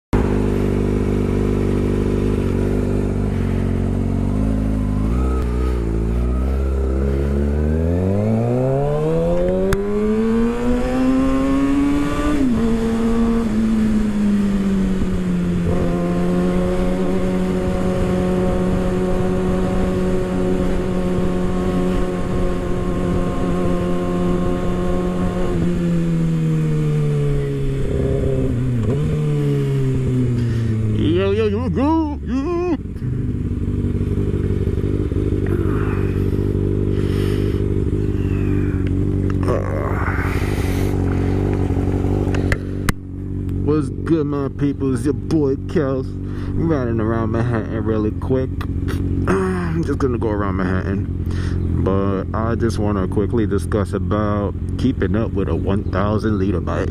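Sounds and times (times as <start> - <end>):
motorcycle engine revving: 0.1 - 56.9.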